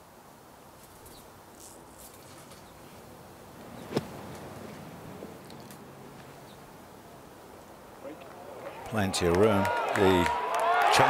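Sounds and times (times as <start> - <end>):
outdoor ambience: 0.0 - 11.0.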